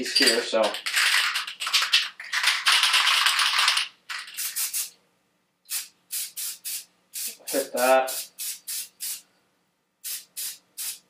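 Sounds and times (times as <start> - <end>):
spray can ball rattling: 0.0 - 4.9, 5.7 - 9.2, 10.0 - 11.0
spray can bursts: 2.3 - 4.9, 5.7 - 9.2, 10.0 - 11.0.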